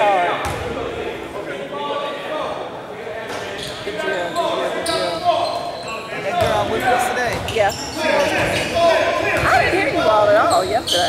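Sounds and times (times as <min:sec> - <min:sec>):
voices of players and spectators: 0:00.0 - 0:11.0.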